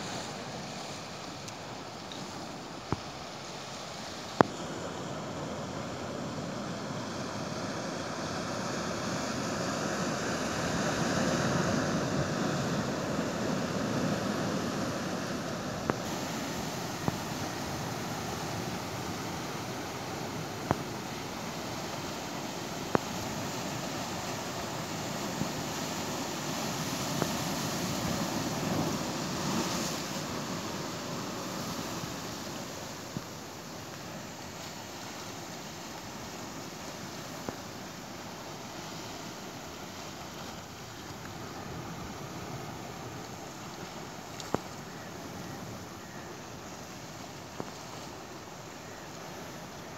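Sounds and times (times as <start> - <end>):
surf rushing: 0.0 - 44.6.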